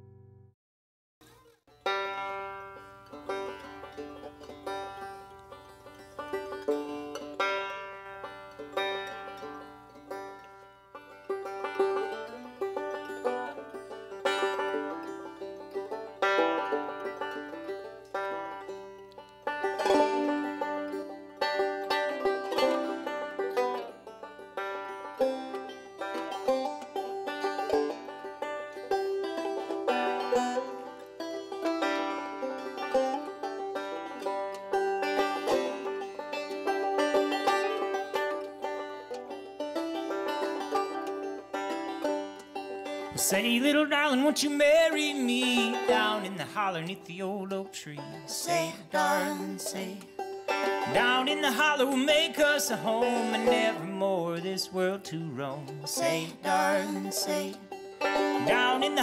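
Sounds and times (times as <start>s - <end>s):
banjos playing: 1.2s - 59.0s.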